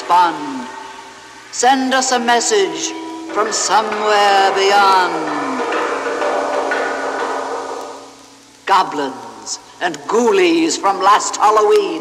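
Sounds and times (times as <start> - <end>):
eerie held chord: 0.0 - 9.8.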